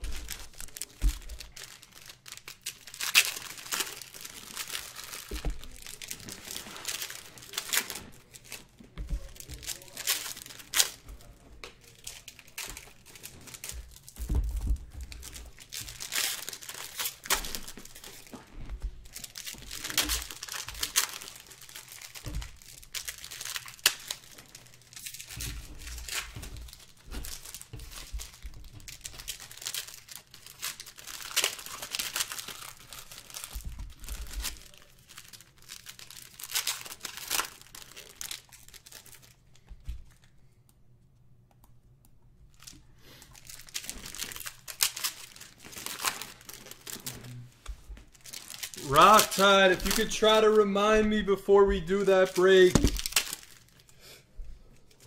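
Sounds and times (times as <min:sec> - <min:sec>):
foil wrappers tearing and crinkling: 0:00.0 - 0:39.4, 0:42.5 - 0:53.9.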